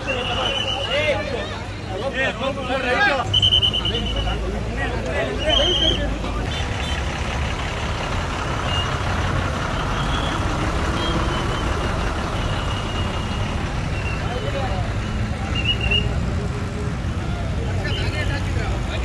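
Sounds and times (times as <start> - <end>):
crowd voices: 0.0 - 19.0
truck engine running: 3.3 - 17.6.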